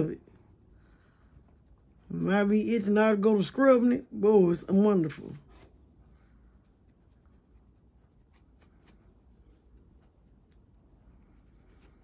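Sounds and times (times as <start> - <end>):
low room hum: 0.0 - 12.0
scratching on scalp: 0.0 - 12.0.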